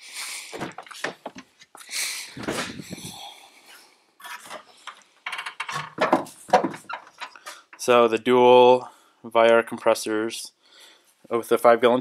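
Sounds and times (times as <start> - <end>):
rustling and scraping: 0.6 - 1.8, 2.4 - 3.2, 4.2 - 7.8.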